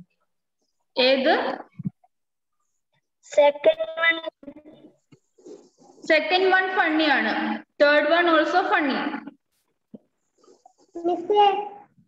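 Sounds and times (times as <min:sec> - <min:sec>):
woman speaking: 0:01.0 - 0:01.7, 0:06.0 - 0:09.3.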